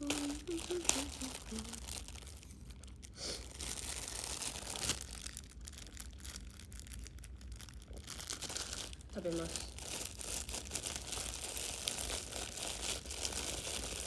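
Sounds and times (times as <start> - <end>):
person humming: 0.0 - 1.9
plastic bag crinkling: 0.0 - 14.0.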